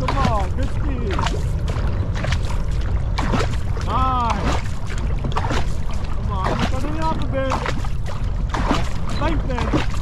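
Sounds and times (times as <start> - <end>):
paddles splashing in water: 0.0 - 10.0
water washing along hull: 0.0 - 10.0
wind rumble on microphone: 0.0 - 10.0.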